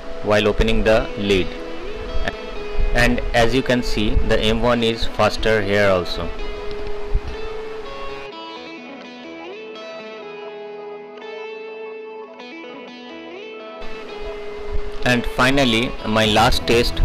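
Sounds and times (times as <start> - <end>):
guitar sustained notes: 0.0 - 17.0.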